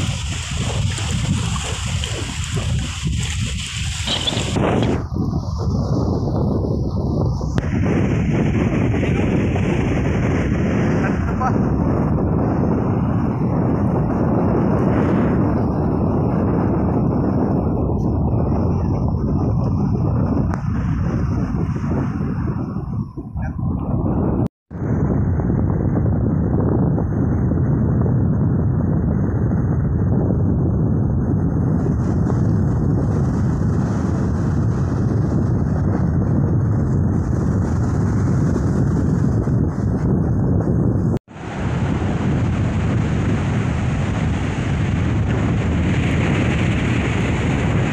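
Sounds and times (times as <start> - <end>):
choppy sea water: 0.0 - 25.4, 28.1 - 47.9
wind buffeting microphone: 0.0 - 47.9.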